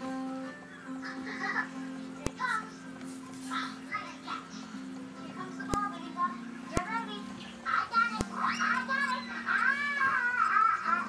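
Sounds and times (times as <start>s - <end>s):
children's voices: 1.0s - 2.8s, 3.4s - 11.0s.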